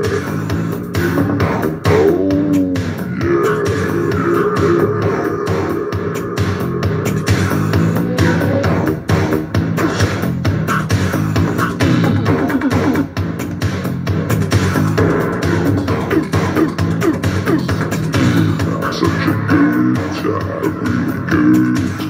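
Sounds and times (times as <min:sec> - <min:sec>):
song through speaker: 0:00.0 - 0:22.0.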